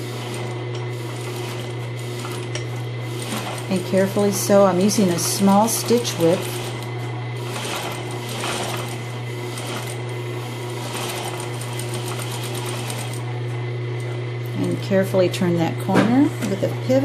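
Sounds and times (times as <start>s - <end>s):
electric sewing machine stitching: 0.0s - 14.2s.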